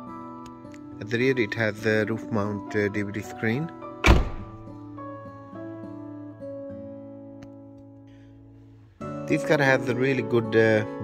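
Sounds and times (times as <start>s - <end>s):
acoustic guitar music: 0.0s - 11.0s
heavy ringing thunk: 4.0s - 4.7s.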